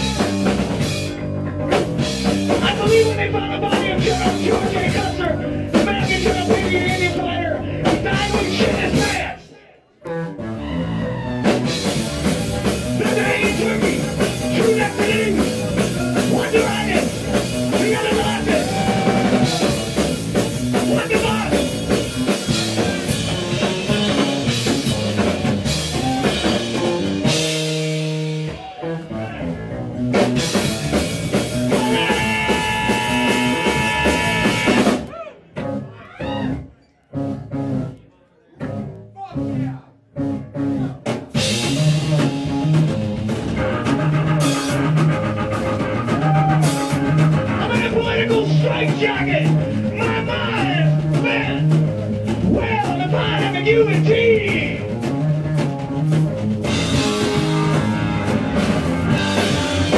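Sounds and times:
drum kit: 0.0 - 9.4, 10.1 - 37.9, 38.6 - 59.9
electric bass guitar: 0.0 - 9.4, 10.0 - 59.9
electric organ: 55.7 - 59.9.

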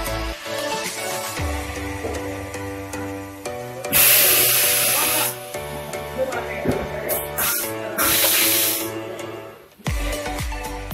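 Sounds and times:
background music with steady tones: 0.0 - 10.9
loud hiss: 0.5 - 5.9, 7.1 - 9.1.

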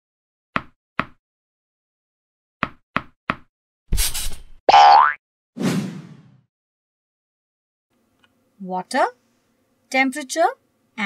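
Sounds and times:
springy boing: 4.7 - 5.2.

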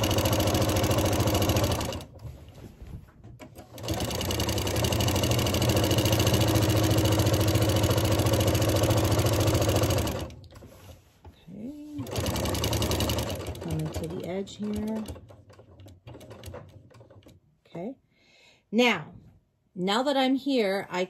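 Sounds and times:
sewing machine stitching: 0.0 - 2.6, 3.3 - 10.8, 11.9 - 17.4.

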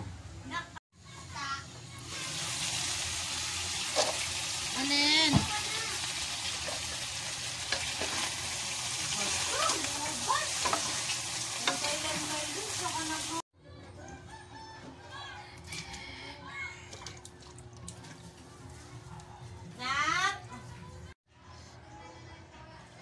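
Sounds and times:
meat sizzling in a pot: 2.0 - 13.5
utensil stirring pot: 5.9 - 13.3.

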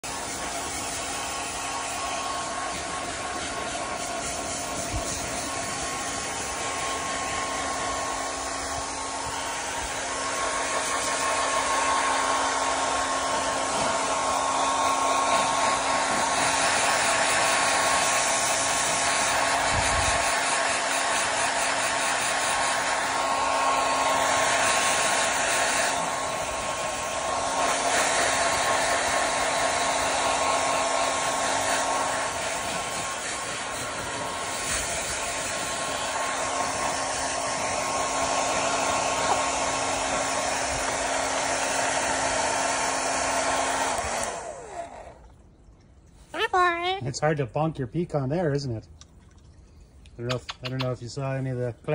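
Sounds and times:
hair dryer running: 0.0 - 45.4.

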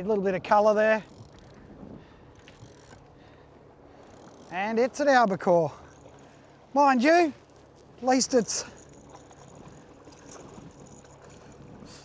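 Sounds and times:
wind and sea noise: 0.0 - 12.0
low hum: 1.0 - 12.0.

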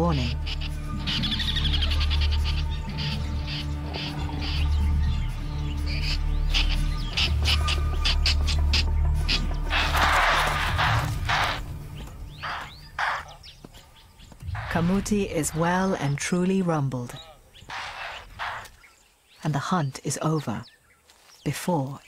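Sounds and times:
background music with low drone: 0.0 - 18.8.

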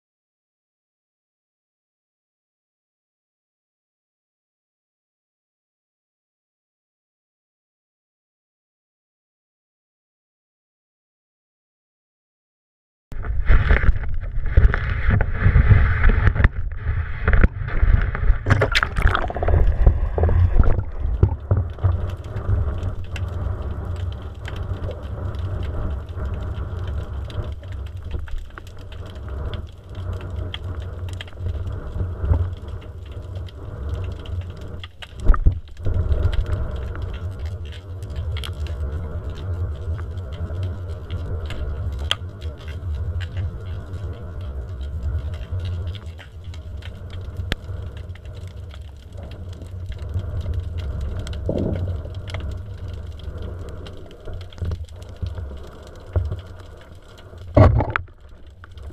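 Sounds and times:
low rumble of water: 13.1 - 58.9.

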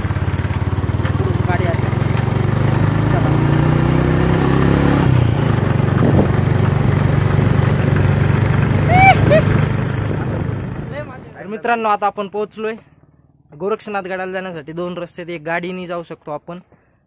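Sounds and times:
motorbike engine running: 0.0 - 11.5
wind noise on microphone: 5.4 - 7.6
person shouting: 8.8 - 9.6.

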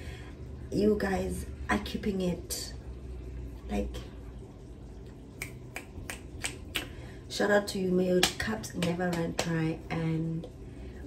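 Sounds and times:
fingers snapping: 5.4 - 7.0.

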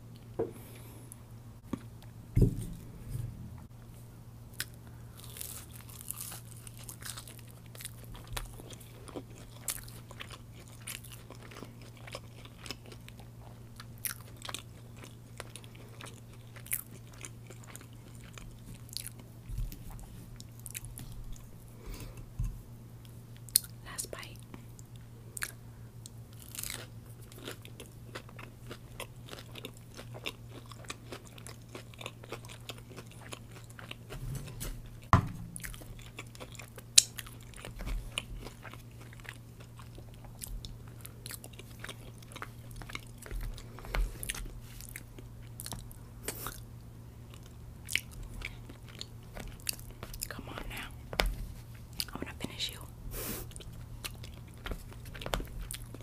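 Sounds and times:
low steady hum: 0.0 - 56.0
chewing with wet mouth sounds: 4.5 - 23.8, 24.4 - 34.2, 34.9 - 52.8, 53.4 - 56.0.

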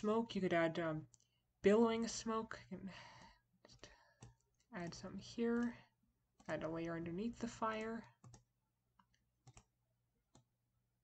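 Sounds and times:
computer mouse clicks: 3.1 - 10.5.

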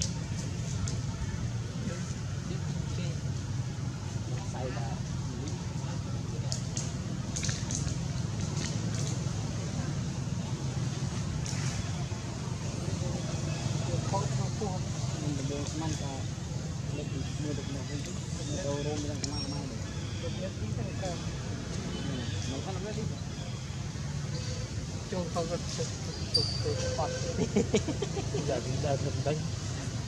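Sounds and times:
people talking in background: 0.0 - 30.0.

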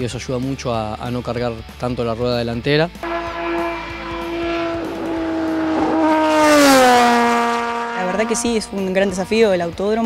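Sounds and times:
race car passing by: 3.0 - 9.6.

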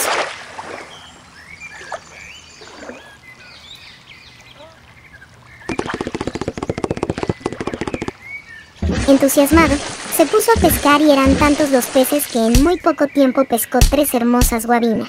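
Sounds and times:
birds chirping: 0.7 - 15.0.

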